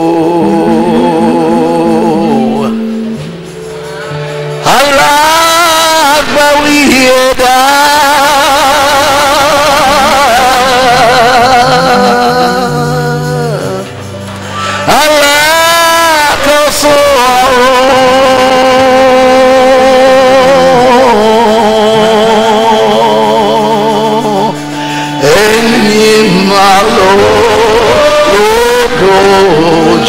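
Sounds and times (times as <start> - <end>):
man singing with vibrato: 0.0 - 30.0.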